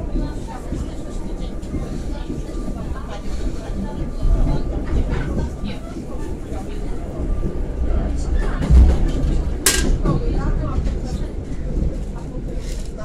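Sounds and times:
train carriage rumbling and rattling: 0.0s - 13.0s.

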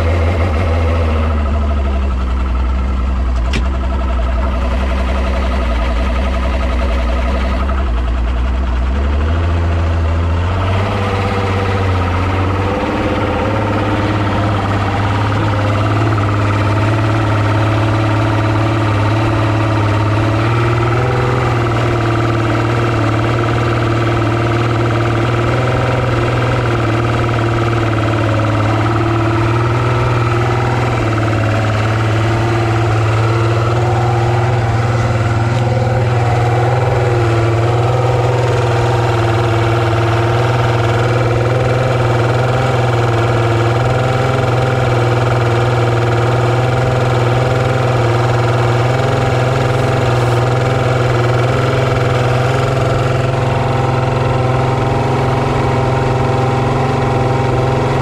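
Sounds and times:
outboard motor idling: 0.0s - 58.0s.

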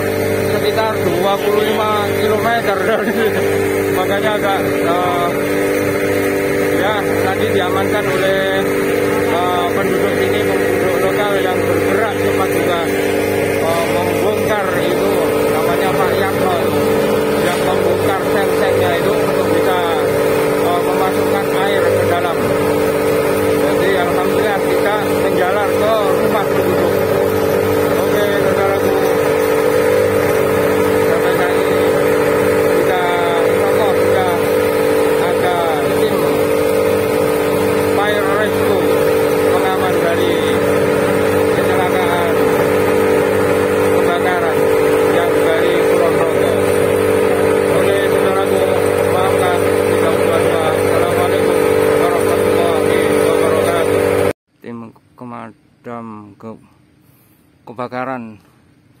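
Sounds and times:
fire truck engine and pump: 0.0s - 54.4s
voices talking: 0.0s - 56.6s.

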